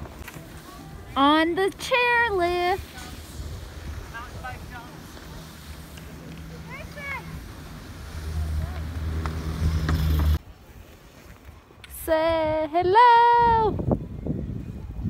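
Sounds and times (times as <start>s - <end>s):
faint distant voices: 0.0s - 1.9s
chairlift mechanical hum: 0.0s - 10.4s
wind on microphone: 2.3s - 10.4s, 12.2s - 15.0s.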